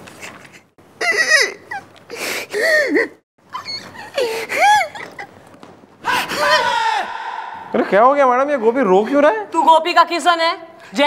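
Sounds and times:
man wailing sobs: 6.0 - 7.4.

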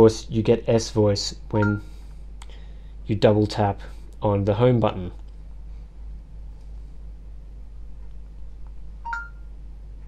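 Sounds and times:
rising two-note beep: 9.1 - 9.4.

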